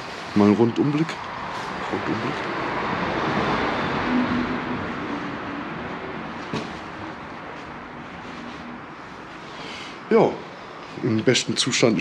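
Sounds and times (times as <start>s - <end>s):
rushing vehicle noise: 0.0s - 11.2s.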